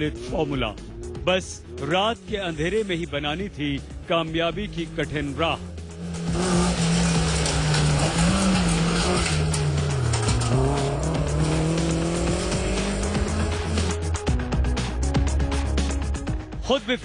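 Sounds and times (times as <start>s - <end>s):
car engine revving: 4.2s - 16.2s.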